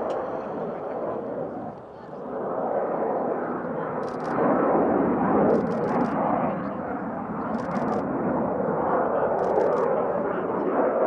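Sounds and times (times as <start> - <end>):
jet engine noise overhead: 0.0 - 11.0.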